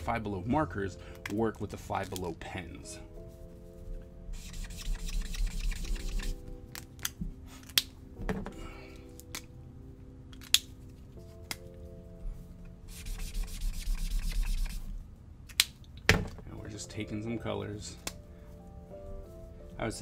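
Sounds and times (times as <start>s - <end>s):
marker scratching on paper: 4.3s - 6.4s, 12.9s - 14.9s
plastic marker clicks: 10.3s - 10.7s.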